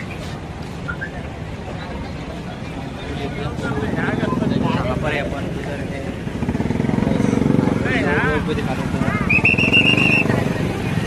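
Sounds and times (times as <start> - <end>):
crowd voices and shouts: 0.0 - 11.0.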